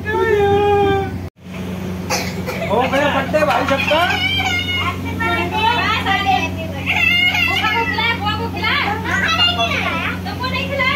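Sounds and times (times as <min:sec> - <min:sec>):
steady low hum: 0:00.0 - 0:10.9
children chattering and calling out: 0:03.4 - 0:10.9.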